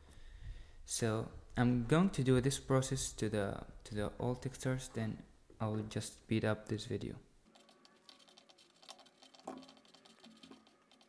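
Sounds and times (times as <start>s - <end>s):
rapid computer keyboard clicking: 7.5s - 11.0s.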